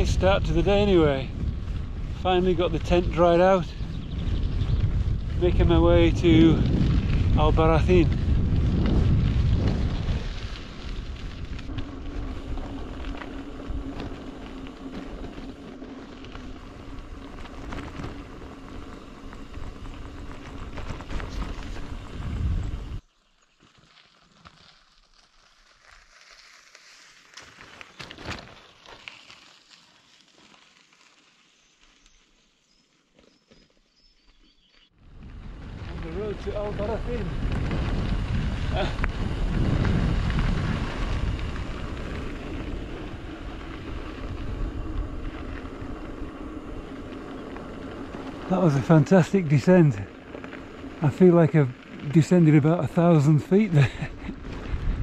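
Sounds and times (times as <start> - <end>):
tyres rumbling on dirt track: 0.0 - 23.0, 35.0 - 55.0
wind buffeting microphone: 0.0 - 23.0, 35.0 - 55.0.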